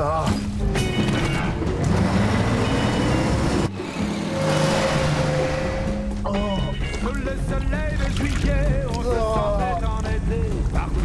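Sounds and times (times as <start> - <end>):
low drone of moving coach: 1.6 - 6.3.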